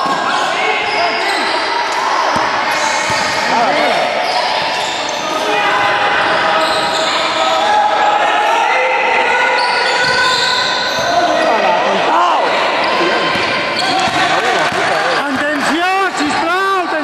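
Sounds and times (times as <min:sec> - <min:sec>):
players calling out: 0:00.0 - 0:17.0
sneakers squeaking on court floor: 0:00.3 - 0:05.6, 0:06.4 - 0:07.4, 0:09.5 - 0:11.5, 0:12.8 - 0:15.2
basketball bouncing: 0:10.0 - 0:10.3, 0:13.3 - 0:15.0.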